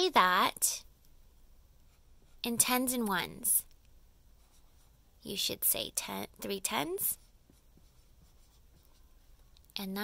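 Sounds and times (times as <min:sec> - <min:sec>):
marker scratching on whiteboard: 0:01.8 - 0:03.6, 0:04.4 - 0:05.4, 0:06.0 - 0:09.6.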